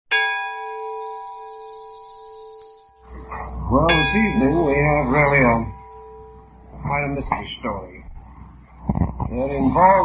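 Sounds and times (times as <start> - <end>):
bell strike ringing: 0.1 - 7.2.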